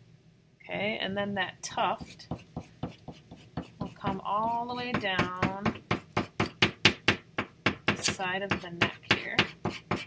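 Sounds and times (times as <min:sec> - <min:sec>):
pencil tapping on paper: 0:02.0 - 0:10.0.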